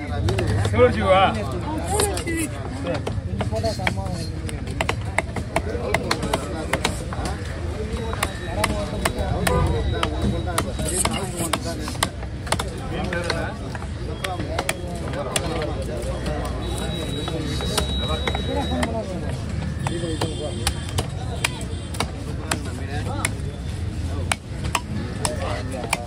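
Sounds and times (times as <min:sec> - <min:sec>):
knife chopping fish on wood: 0:03.0 - 0:07.4, 0:08.1 - 0:13.8, 0:19.7 - 0:23.4, 0:24.2 - 0:26.0.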